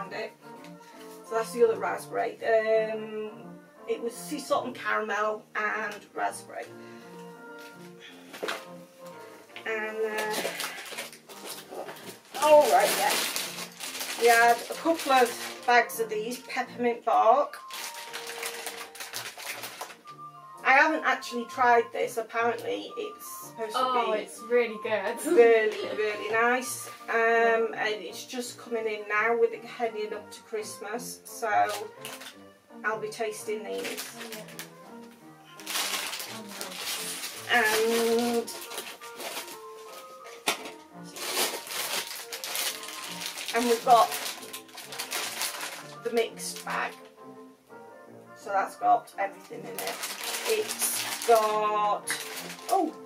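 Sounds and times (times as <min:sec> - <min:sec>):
background music: 0:00.0 - 0:53.0
cellophane crinkling: 0:05.9 - 0:16.5, 0:17.4 - 0:20.4, 0:25.1 - 0:27.1, 0:31.6 - 0:32.5, 0:33.6 - 0:47.2, 0:49.5 - 0:53.0.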